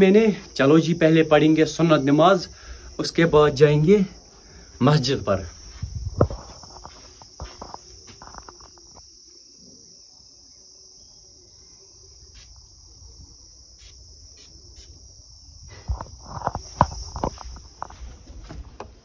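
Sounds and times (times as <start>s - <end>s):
insect chorus: 0.0s - 19.0s
soft knocks and rustles: 16.0s - 19.0s.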